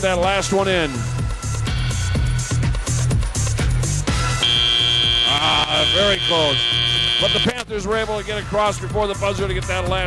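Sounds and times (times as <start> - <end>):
arena music with steady beat: 0.0 - 10.0
high-pitched buzzer: 4.4 - 7.5.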